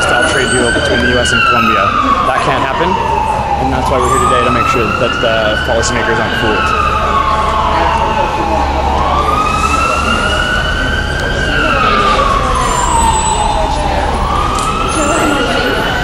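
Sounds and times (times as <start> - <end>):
emergency siren wailing: 0.0 - 16.0.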